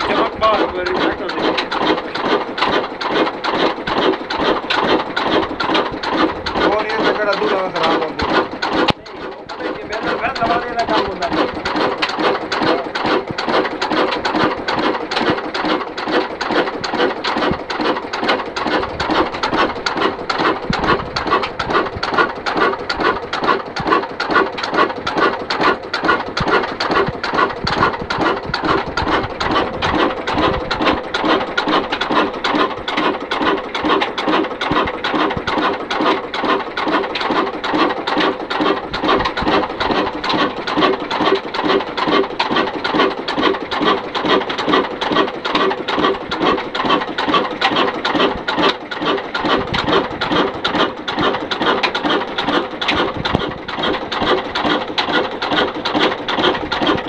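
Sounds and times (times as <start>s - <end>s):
diesel engine clattering slowly: 0.0s - 57.0s.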